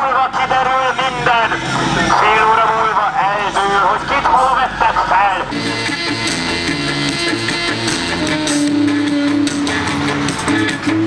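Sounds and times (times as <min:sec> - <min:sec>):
man calling through megaphone: 0:00.0 - 0:05.6.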